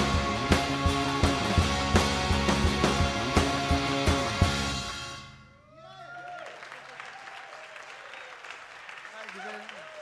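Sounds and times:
small audience clapping: 6.2 - 10.0.

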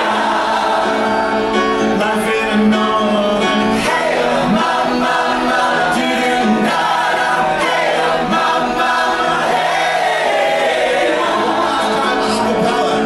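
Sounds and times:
piano accompaniment: 0.0 - 13.0
voices singing along: 0.0 - 13.0
man singing into a microphone: 1.8 - 5.0, 11.2 - 13.0.

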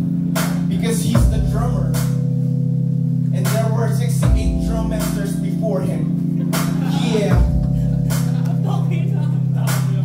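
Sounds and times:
drum hits: 6.6 - 8.4.

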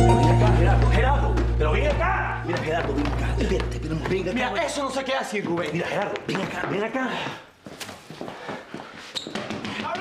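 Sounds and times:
quick footsteps on tiled floor: 0.6 - 10.0.

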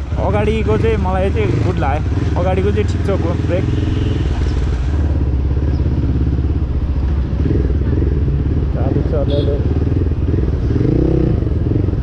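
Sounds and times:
motorcycle engine at low speed: 0.0 - 12.0.

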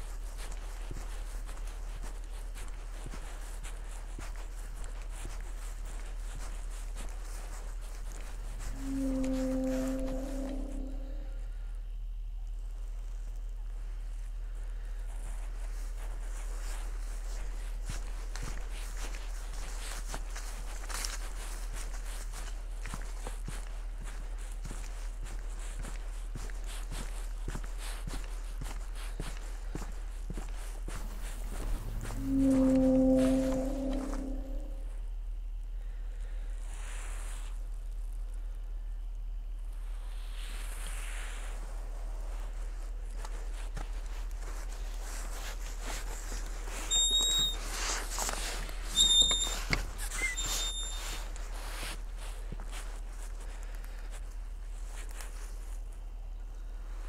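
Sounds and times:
faint footsteps: 0.0 - 11.6, 12.4 - 35.0, 41.3 - 57.0
low rumble: 3.4 - 15.4, 29.7 - 35.3
high whistle-like tones: 8.7 - 11.4, 31.0 - 34.9, 46.9 - 47.6, 49.0 - 51.1
footsteps on dry leaves: 15.6 - 33.9.

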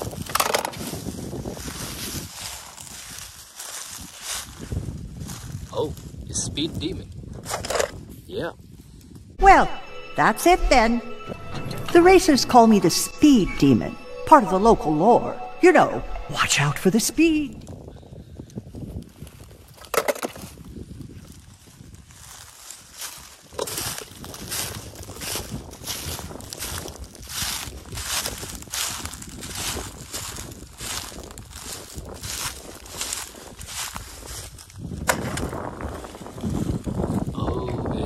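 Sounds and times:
footsteps crunching dry leaves: 0.0 - 6.2, 20.4 - 37.2.

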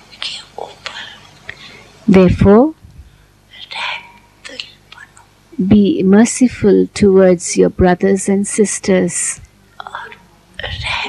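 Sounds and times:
person whispering: 0.0 - 1.8, 3.5 - 5.3, 9.8 - 11.0.

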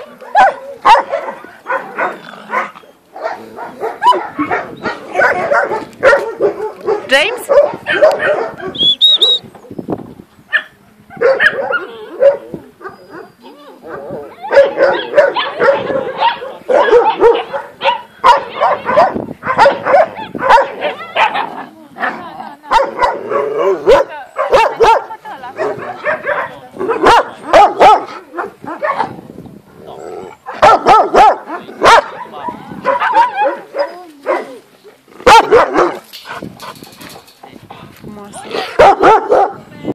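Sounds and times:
dogs barking: 0.0 - 9.0, 10.5 - 29.2, 30.2 - 34.6, 35.2 - 37.3, 38.5 - 39.6.

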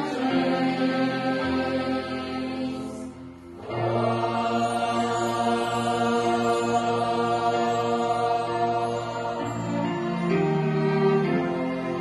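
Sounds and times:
choir and strings sustained chord: 0.0 - 12.0.

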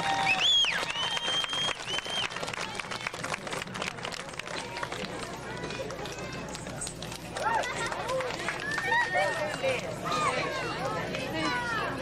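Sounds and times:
applause: 0.0 - 9.9
crowd chattering: 1.5 - 12.0.

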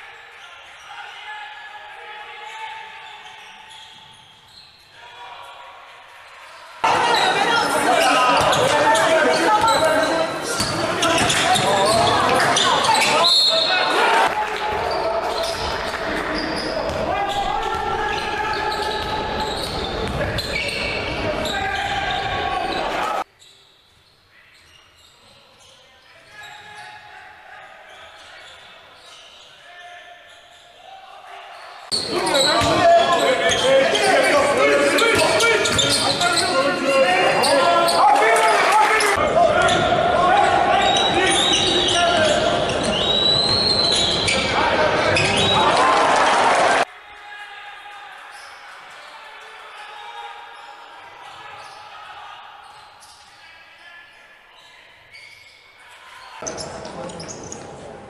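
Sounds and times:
voices echoing in hall: 0.0 - 58.0.

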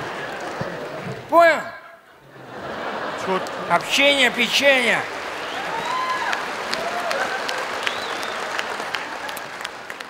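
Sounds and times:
audience applauding: 0.0 - 1.3, 2.8 - 10.0.

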